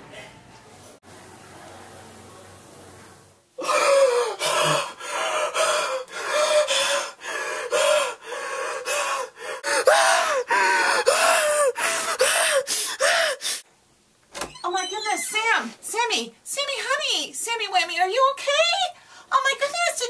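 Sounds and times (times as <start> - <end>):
young man gasping: 3.6 - 13.6.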